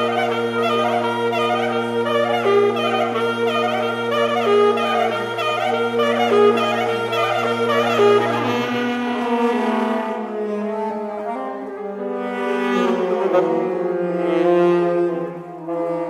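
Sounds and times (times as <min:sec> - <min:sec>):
saxophone quartet playing chords: 0:00.0 - 0:16.0.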